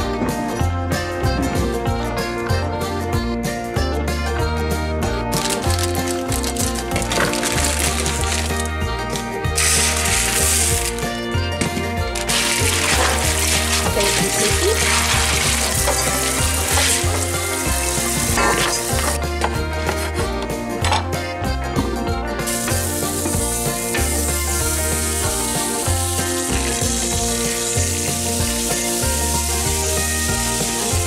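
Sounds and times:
background music with beat: 0.0s - 31.0s
faucet running onto beans: 5.4s - 11.2s, 12.0s - 20.0s, 22.4s - 31.0s.

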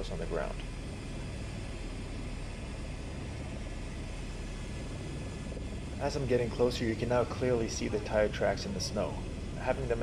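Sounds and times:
helicopter cabin drone: 0.0s - 10.0s.

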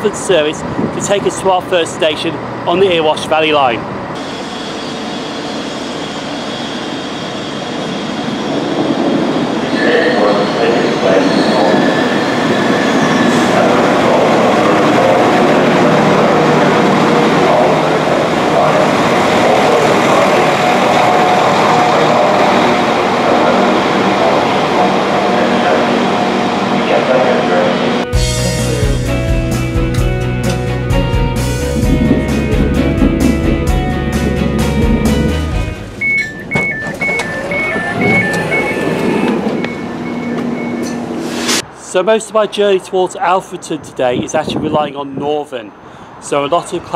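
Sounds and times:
diesel train engine and wheels: 0.0s - 46.9s.

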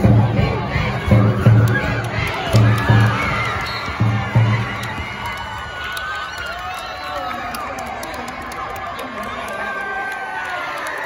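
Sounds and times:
deep thumping beat: 0.0s - 5.1s
crowd cheering and shouting: 0.0s - 11.0s.

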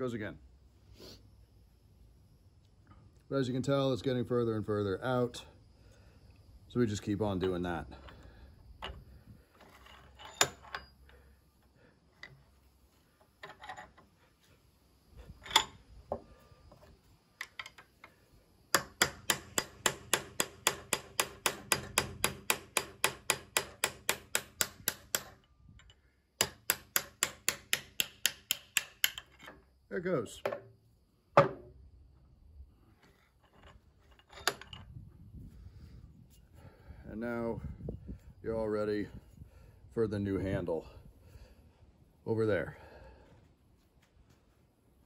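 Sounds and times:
hammer striking steel rod: 18.8s - 25.4s, 26.4s - 29.2s.

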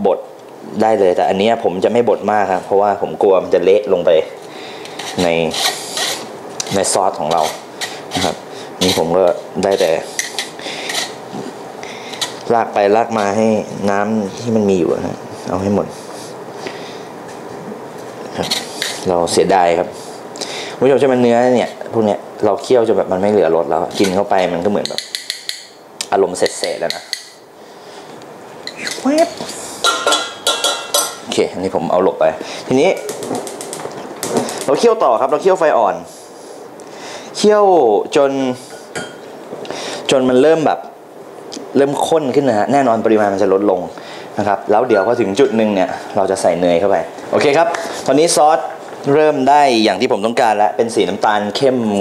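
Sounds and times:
metal spoon scraping a strainer: 5.0s - 6.3s.

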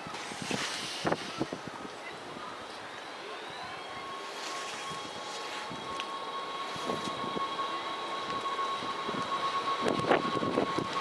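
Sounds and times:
electric train traction whine: 0.0s - 11.0s.

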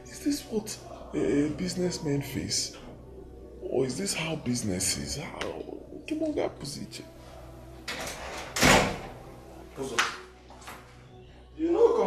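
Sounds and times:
door banging open: 7.9s - 9.2s.

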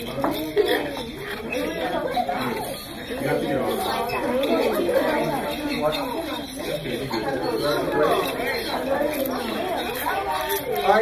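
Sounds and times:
children chattering: 0.0s - 11.0s.

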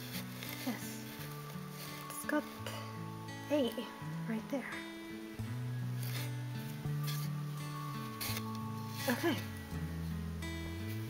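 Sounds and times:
t-shirt rustling: 0.0s - 4.0s, 5.5s - 9.8s
background music: 0.0s - 11.0s.

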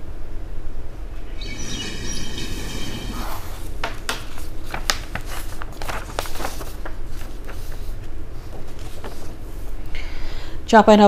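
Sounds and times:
shrill drawn-out tone: 1.2s - 3.7s.

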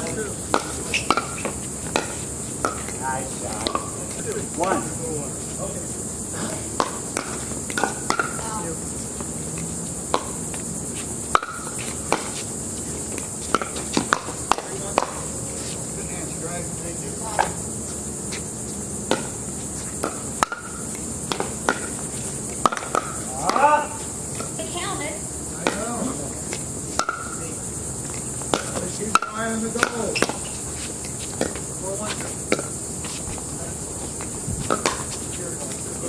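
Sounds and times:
ball bouncing on hard court: 0.0s - 4.8s, 6.8s - 9.3s, 10.1s - 10.6s, 11.3s - 12.4s, 13.1s - 15.3s, 19.1s - 22.0s, 22.6s - 23.7s, 25.6s - 26.0s, 27.0s - 27.5s, 28.5s - 30.6s, 34.6s - 35.2s
players' voices: 0.0s - 9.5s, 14.4s - 17.8s, 23.0s - 27.8s, 28.6s - 32.7s, 35.0s - 36.0s
steady high-pitched hiss: 0.0s - 36.0s.

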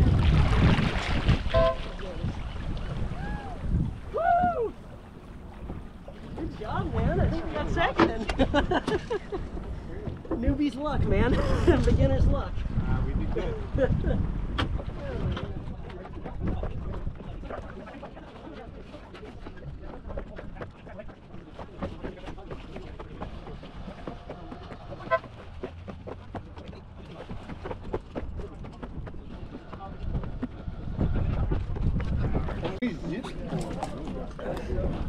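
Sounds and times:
wind rumbling on microphone: 0.0s - 35.0s.

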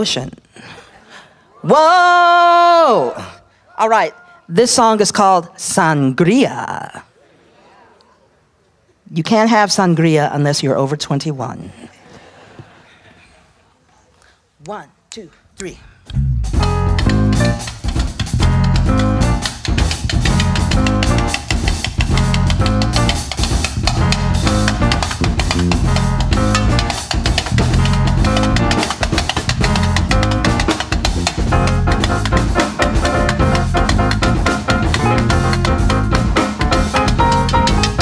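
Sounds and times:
person speaking count-in: 14.6s - 16.0s
jazz quartet playing: 16.2s - 38.0s.

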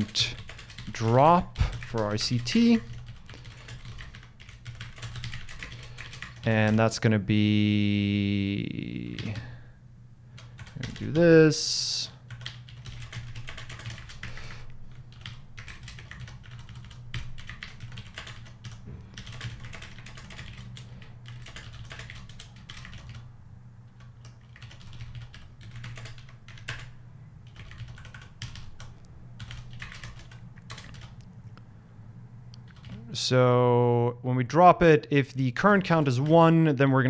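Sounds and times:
keyboard typing: 0.0s - 6.9s, 9.0s - 9.5s, 10.4s - 11.2s, 12.3s - 23.3s, 23.9s - 31.6s, 32.6s - 33.0s
steady low hum: 0.0s - 37.0s.

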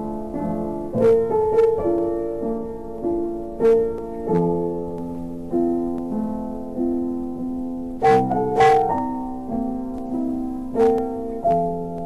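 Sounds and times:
slow gentle piano music: 0.0s - 12.0s.

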